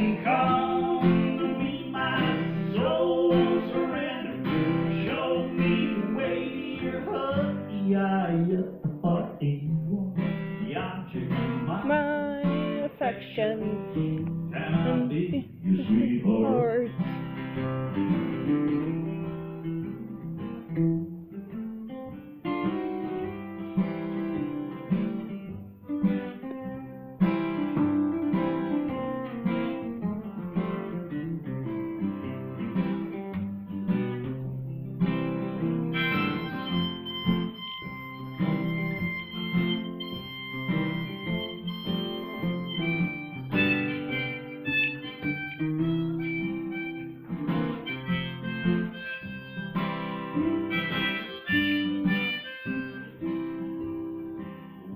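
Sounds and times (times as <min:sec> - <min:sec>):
harmonica melody: 0:00.0 - 0:08.0, 0:10.4 - 0:20.2, 0:35.2 - 0:54.9
acoustic guitars strumming: 0:00.0 - 0:54.9.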